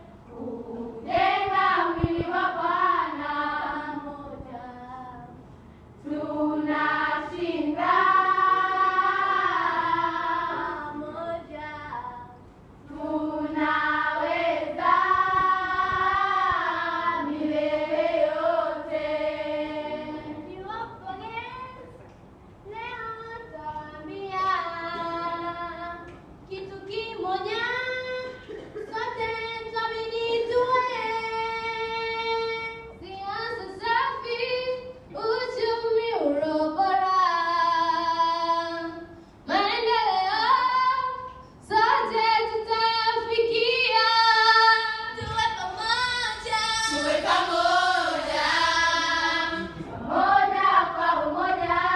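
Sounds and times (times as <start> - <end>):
girls singing together: 0.0 - 5.4, 6.0 - 20.7, 23.1 - 51.9.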